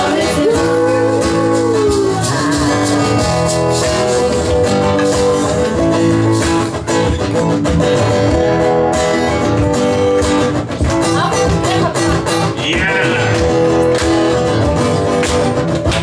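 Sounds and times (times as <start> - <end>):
acoustic guitars strumming: 0.0 - 16.0.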